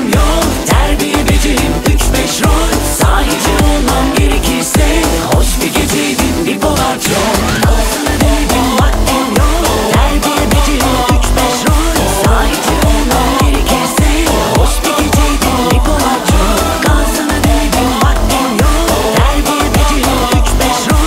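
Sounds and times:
deep kick drum: 0.0 - 6.0, 6.8 - 21.0
electronic dance beat: 0.0 - 21.0.

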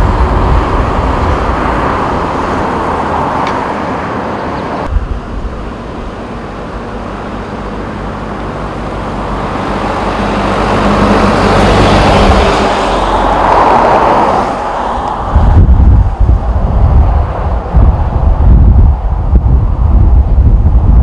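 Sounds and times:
highway traffic rushing past: 0.0 - 21.0.

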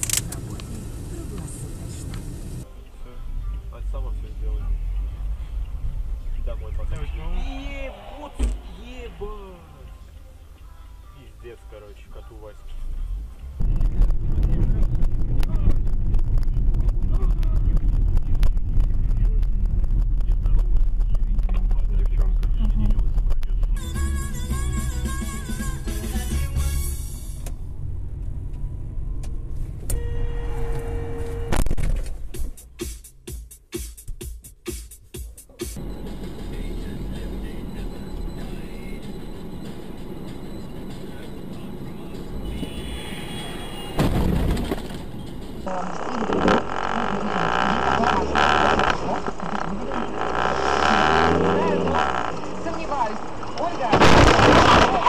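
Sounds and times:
sharp clicks: 0.0 - 0.8
voices: 0.0 - 15.8, 35.8 - 55.0
car engine: 0.0 - 24.1, 26.0 - 32.8, 35.5 - 55.0
road rumble: 0.0 - 33.3, 35.4 - 55.0
music: 9.2 - 13.6, 23.8 - 27.5, 32.2 - 43.2
short steady tone: 35.8 - 44.0.

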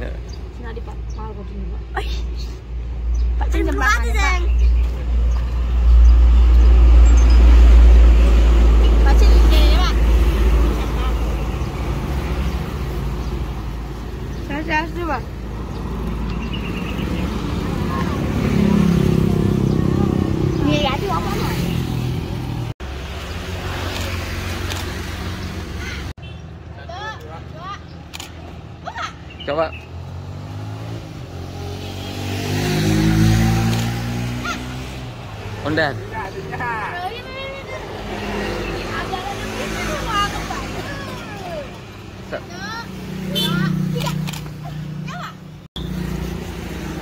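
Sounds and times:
cars and motorcycles passing: 0.0 - 47.0.

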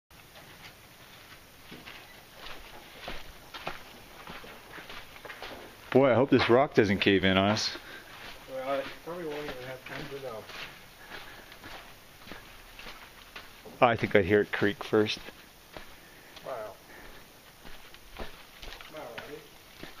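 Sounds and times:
footsteps on a gritty trail: 0.2 - 20.0.

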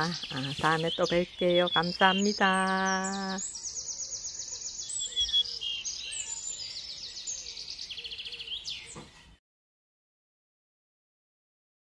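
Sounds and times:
songbird trilling and chirping: 0.0 - 9.4.

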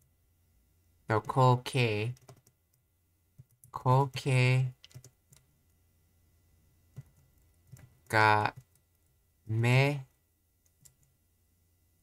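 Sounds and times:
keyboard and mouse clicks: 2.0 - 5.5, 6.9 - 9.1, 10.6 - 11.2.

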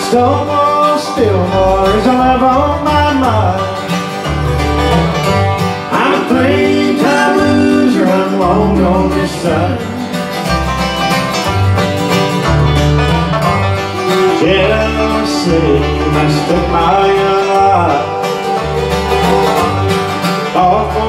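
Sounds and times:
acoustic guitar: 0.0 - 21.0
banjo: 0.0 - 21.0
fiddle: 0.0 - 21.0
upright bass low notes: 0.0 - 21.0.

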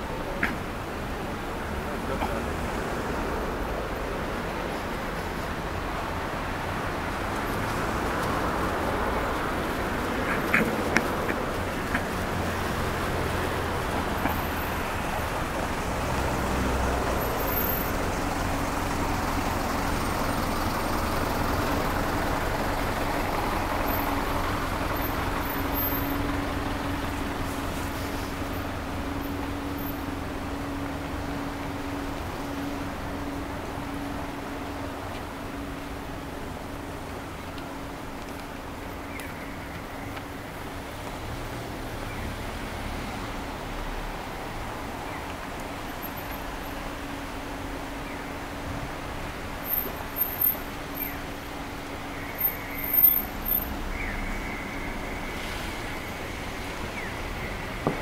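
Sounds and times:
traffic noise: 0.0 - 58.0.

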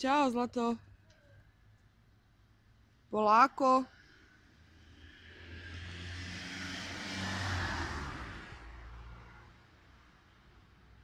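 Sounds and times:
car driving past: 4.0 - 9.8.

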